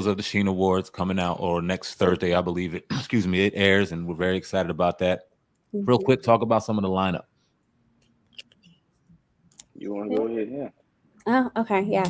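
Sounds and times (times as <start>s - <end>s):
man speaking: 0.0s - 5.2s, 5.8s - 7.2s, 9.8s - 10.7s.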